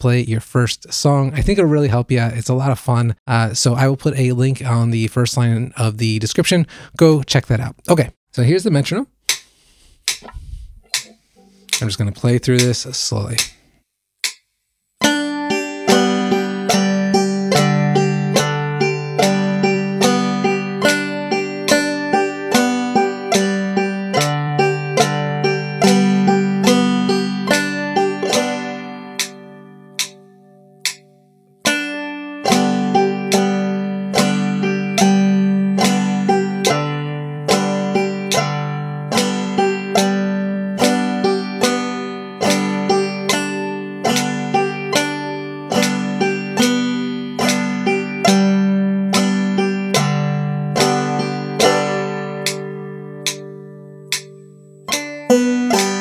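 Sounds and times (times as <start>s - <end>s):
banjo picking: 0.9s - 2.7s, 10.0s - 13.5s, 15.0s - 30.2s, 31.6s - 56.0s
metronome clicks: 28.2s - 30.2s, 30.8s - 31.9s, 33.2s - 33.7s, 34.9s - 37.6s, 38.2s - 38.5s, 41.6s - 50.1s, 51.6s - 56.0s.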